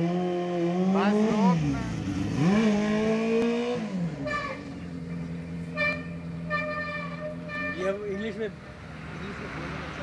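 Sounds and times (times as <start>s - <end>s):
motorcycle engine accelerating: 0.0s - 7.9s.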